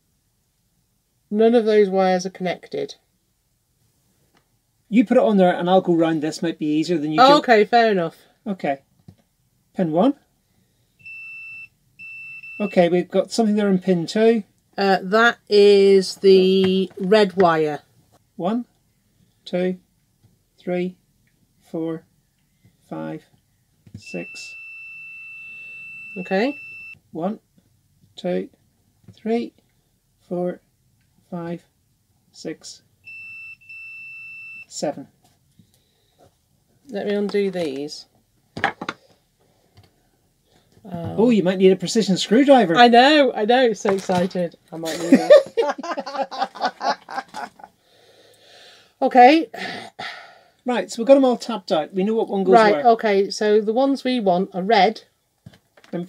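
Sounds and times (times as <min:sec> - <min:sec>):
continuity tester beeping: 0:11.0 - 0:12.9, 0:24.0 - 0:27.0, 0:33.0 - 0:34.7.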